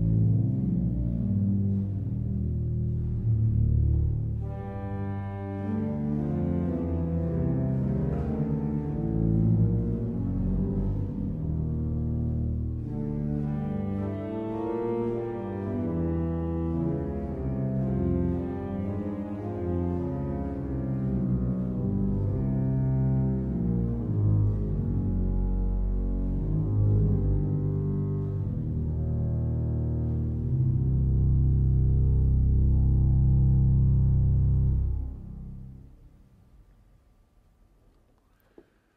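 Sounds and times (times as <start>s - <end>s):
pipe organ low notes: 0.0s - 36.4s.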